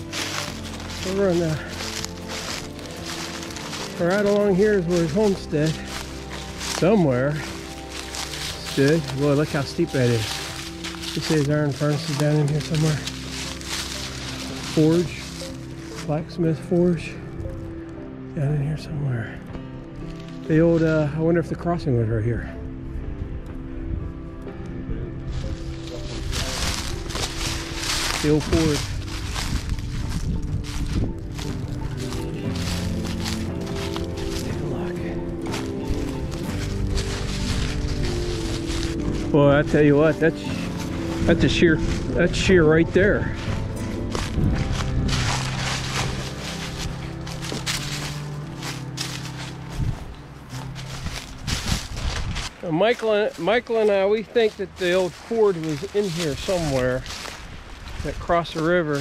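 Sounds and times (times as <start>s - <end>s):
footsteps through dry leaves: 0.0s - 18.2s, 18.9s - 21.5s, 25.2s - 59.0s
background music with held notes: 0.0s - 59.0s.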